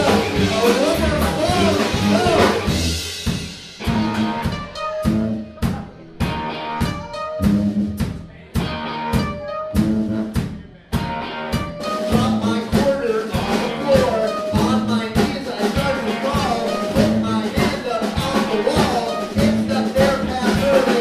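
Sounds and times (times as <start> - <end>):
held low tuba notes: 0.0 - 3.1, 3.8 - 10.4, 11.0 - 20.7
drum strikes: 0.0 - 21.0
live band playing: 0.0 - 21.0.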